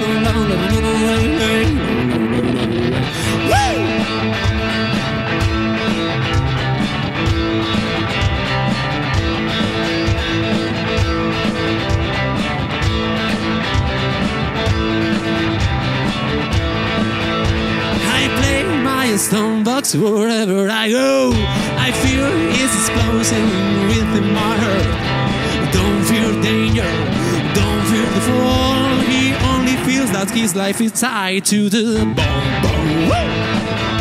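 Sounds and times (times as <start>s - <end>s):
cigar box guitar playing: 0.0s - 34.0s.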